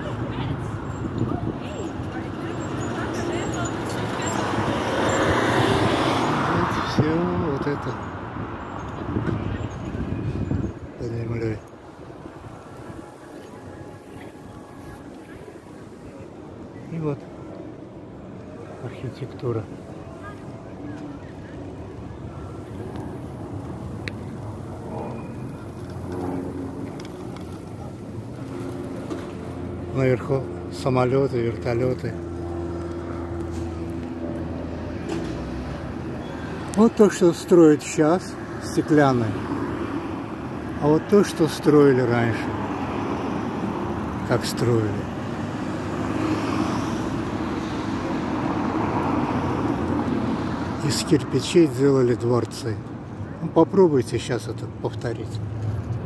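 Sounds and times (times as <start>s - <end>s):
faint voices of passers-by: 0.0s - 56.0s
low traffic rumble: 0.0s - 56.0s
boat engine humming: 19.7s - 35.0s.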